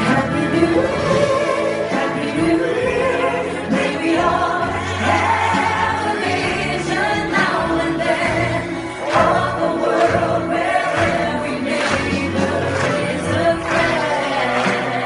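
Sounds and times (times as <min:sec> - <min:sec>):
group singing: 0:00.0 - 0:15.0.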